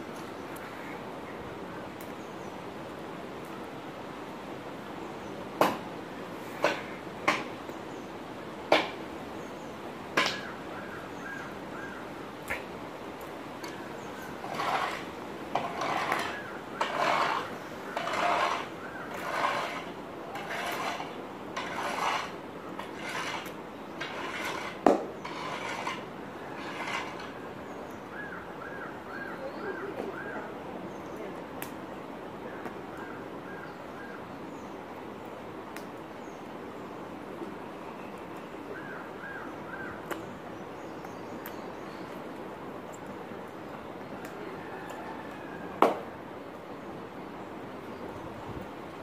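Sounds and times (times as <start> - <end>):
steady background hiss: 0.0 - 49.0.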